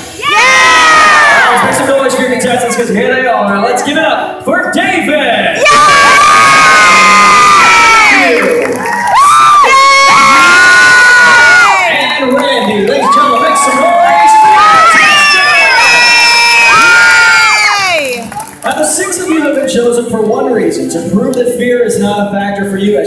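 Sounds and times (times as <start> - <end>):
audience cheering and shrieking: 0.0 - 1.9, 5.6 - 19.5.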